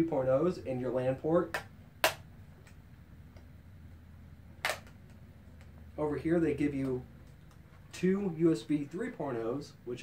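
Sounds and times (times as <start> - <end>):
sharp clicks of laptop handled: 4.6 - 5.7.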